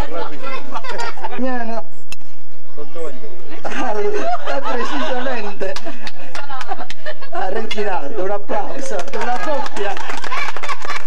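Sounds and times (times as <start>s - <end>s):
people talking and laughing: 0.0s - 2.0s, 2.6s - 11.0s
sharp click: 2.1s - 2.3s.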